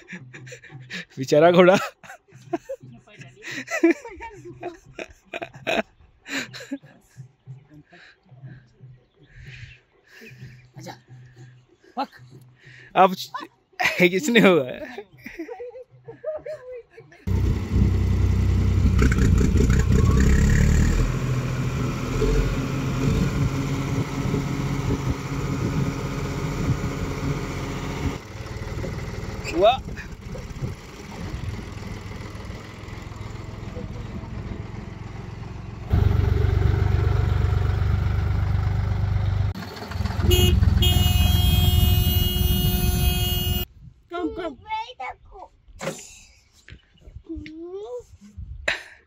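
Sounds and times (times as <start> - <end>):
tractor diesel engine running: 17.3 - 43.7
brief rising tone: 19.0 - 21.1.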